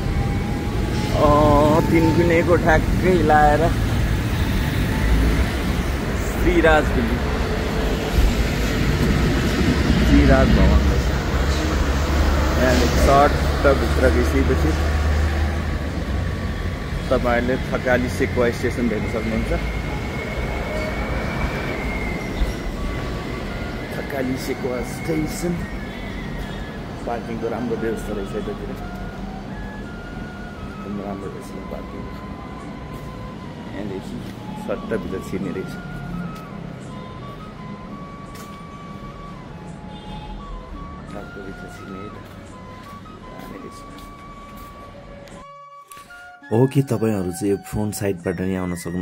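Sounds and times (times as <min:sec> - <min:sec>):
background music: 0:00.0 - 0:49.0
roadside traffic rumble: 0:00.0 - 0:49.0
person speaking: 0:46.5 - 0:49.0.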